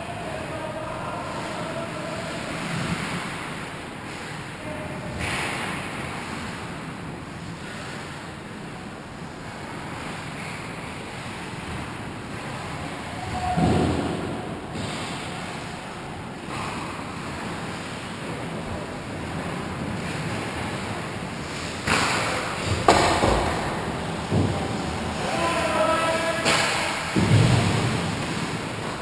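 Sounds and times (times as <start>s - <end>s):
ice hockey rink ambience: 0.0s - 29.0s.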